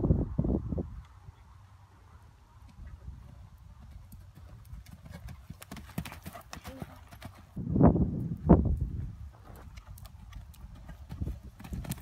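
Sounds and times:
horse hoofbeats on dirt: 0:02.7 - 0:07.6, 0:08.8 - 0:12.0.

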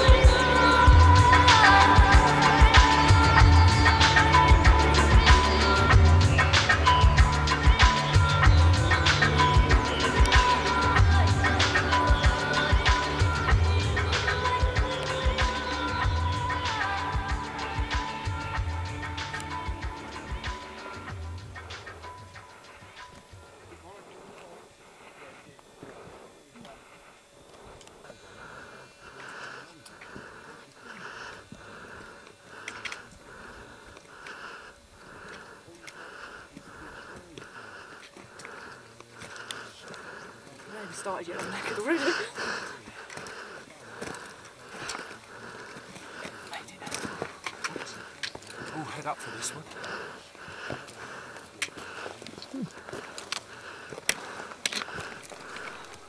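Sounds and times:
heavy rhythmic breathing: 0:00.0 - 0:56.0.

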